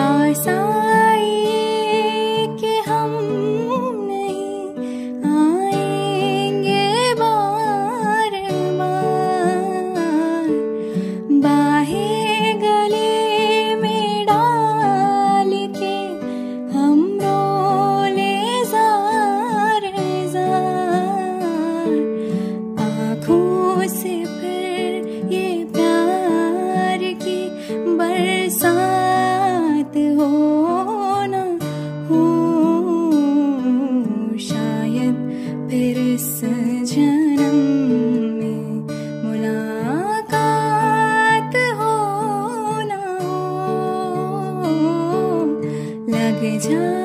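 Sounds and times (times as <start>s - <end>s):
acoustic guitar: 0.0s - 47.0s
woman singing: 0.0s - 47.0s.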